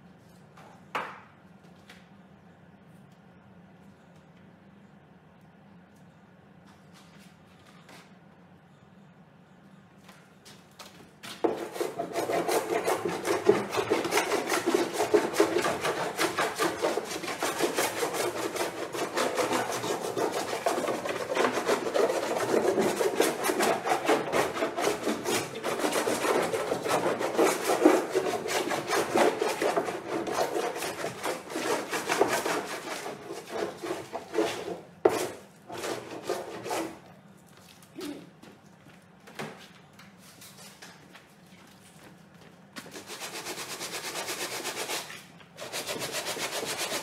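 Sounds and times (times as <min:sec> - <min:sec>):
sanding a painted panel by hand: 0:11.4 - 0:37.0, 0:42.9 - 0:47.0.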